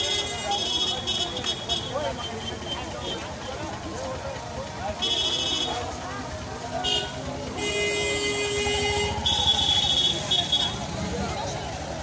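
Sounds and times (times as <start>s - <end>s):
crowd chatter: 0.0s - 12.0s
vehicle horn honking: 5.0s - 5.8s, 6.8s - 10.8s.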